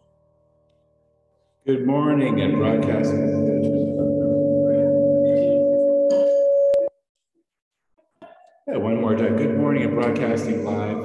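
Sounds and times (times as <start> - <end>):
steady held two-pitch tone: 2.2 - 7.0.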